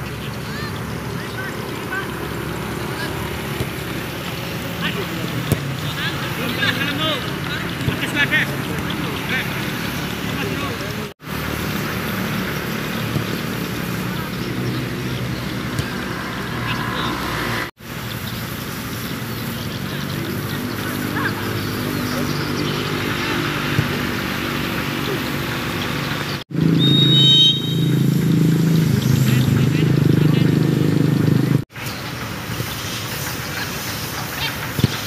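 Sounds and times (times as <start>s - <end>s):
voices calling and shouting: 0.0s - 17.7s, 19.0s - 31.6s, 33.0s - 35.0s.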